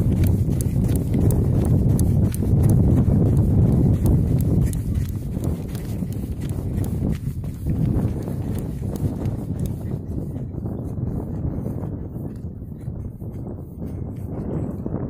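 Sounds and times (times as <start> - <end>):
faint irregular clicks: 0.0 - 9.9
wind buffeting microphone: 0.0 - 15.0.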